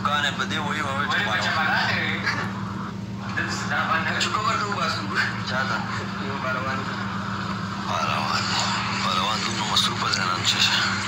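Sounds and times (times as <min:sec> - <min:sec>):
men talking: 0:00.0 - 0:11.0
steady low hum: 0:00.0 - 0:11.0.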